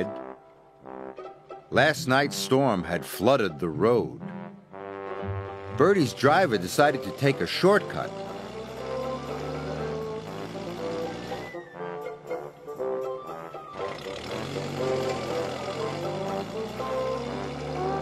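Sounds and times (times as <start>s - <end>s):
score music with held notes: 0.0s - 18.0s.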